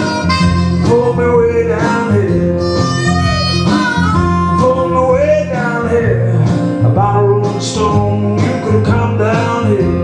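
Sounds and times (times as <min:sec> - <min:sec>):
harmonica playing: 0:00.0 - 0:05.5
slide guitar: 0:00.0 - 0:10.0
steady bass: 0:00.0 - 0:10.0.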